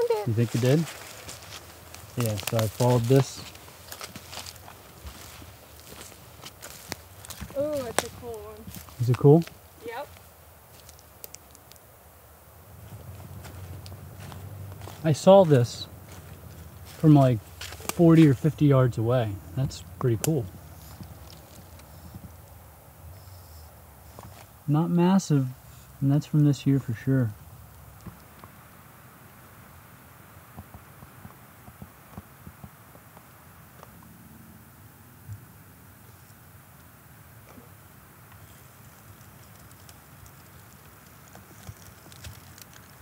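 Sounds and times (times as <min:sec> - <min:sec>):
footsteps crunching on dry leaves: 0:00.0 - 0:11.8, 0:12.8 - 0:18.5
quiet woodland background: 0:00.0 - 0:43.0.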